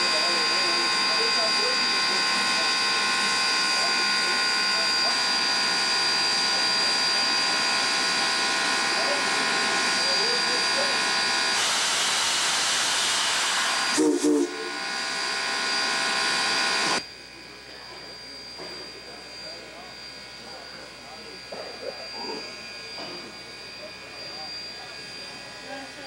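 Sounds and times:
steam locomotive hissing: 0.0s - 26.0s
steam whistle toots: 8.8s - 17.0s.

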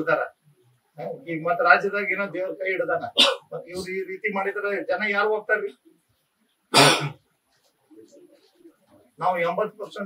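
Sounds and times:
man clearing his throat: 6.7s - 7.2s.

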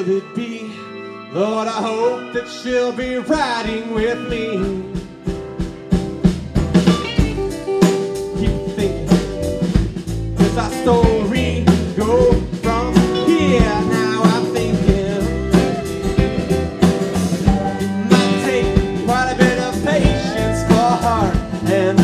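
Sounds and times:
bending lead guitar line: 0.0s - 22.0s
live band instrumental: 0.0s - 22.0s
strummed guitars: 0.0s - 22.0s
drum kit with cymbals: 3.3s - 22.0s.

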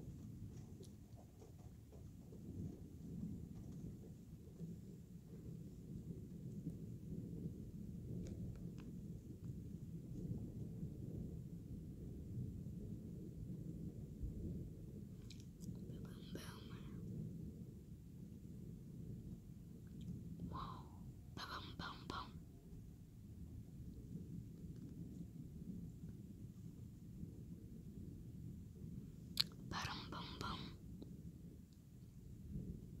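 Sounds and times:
steady low rumble: 0.0s - 33.0s
person whispering: 15.8s - 16.9s, 20.5s - 22.4s, 29.4s - 30.8s.

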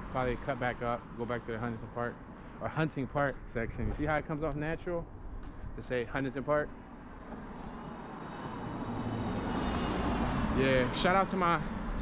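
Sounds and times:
car approaching: 6.7s - 12.0s.

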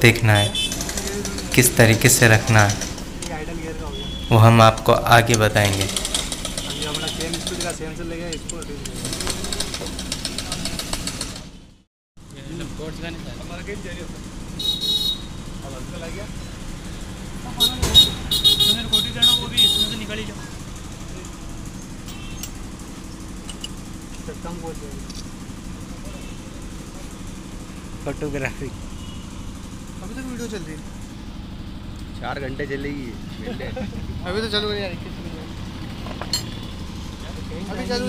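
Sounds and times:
engine idling: 0.0s - 38.0s
engine ticking knock: 0.5s - 1.8s, 5.9s - 11.6s.

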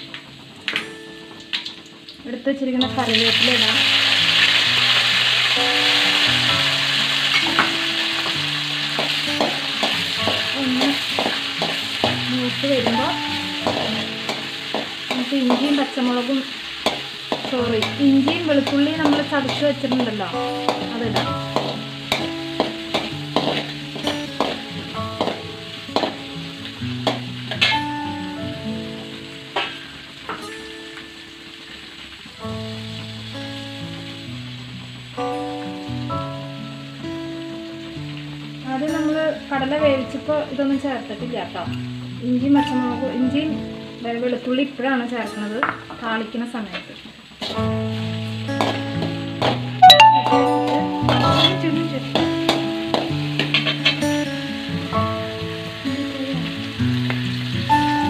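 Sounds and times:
background music: 0.0s - 46.6s, 47.4s - 58.0s
sizzling in hot oil: 0.0s - 58.0s
metal ladle scraping pan: 16.7s - 25.4s, 51.0s - 52.6s, 53.4s - 54.1s
wavering pitched tune: 49.8s - 51.8s.

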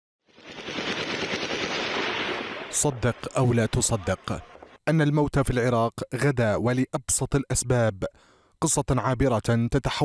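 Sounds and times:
rapid automatic gunfire: 0.4s - 4.6s.

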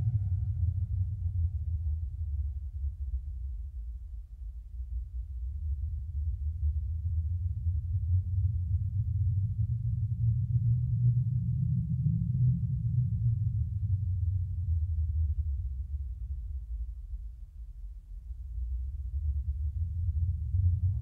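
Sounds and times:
low muffled rumble: 0.0s - 21.0s.

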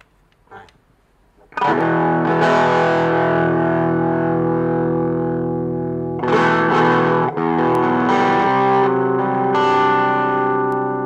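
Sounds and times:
distorted electric guitar chords: 1.5s - 11.0s.

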